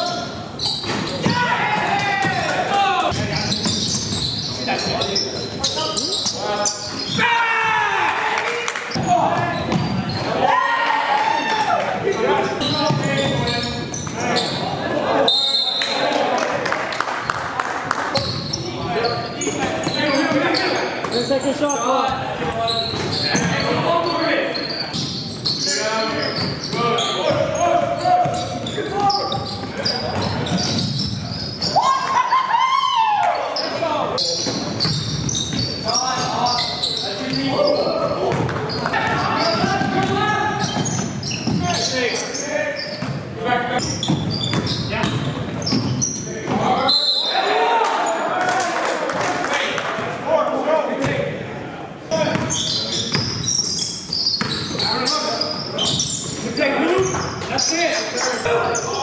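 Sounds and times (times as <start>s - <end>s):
players shouting: 1.1s - 3.2s, 7.1s - 12.4s, 46.5s - 49.4s.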